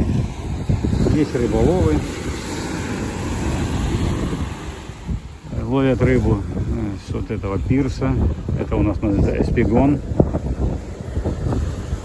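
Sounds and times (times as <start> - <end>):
surf breaking on shore: 0.0 - 12.0
wind buffeting microphone: 0.0 - 12.0.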